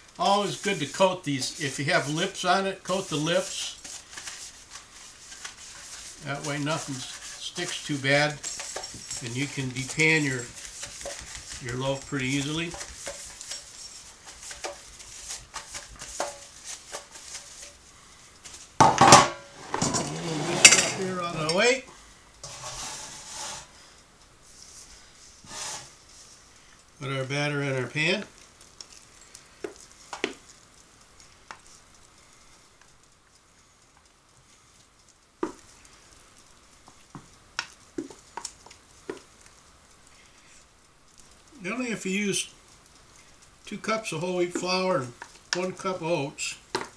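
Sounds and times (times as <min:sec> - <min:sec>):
pan clunking on countertop: 0:18.8 - 0:21.0
spatula scraping metal bowl: 0:19.6 - 0:21.6.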